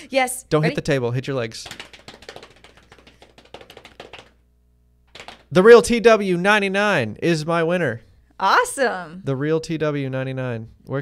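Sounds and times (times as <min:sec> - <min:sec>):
hands patting on thighs: 0:01.6 - 0:04.4, 0:05.1 - 0:05.5.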